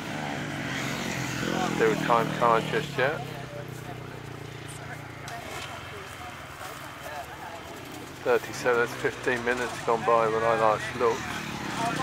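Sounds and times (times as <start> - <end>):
faint chatter of voices: 0.9 - 12.0.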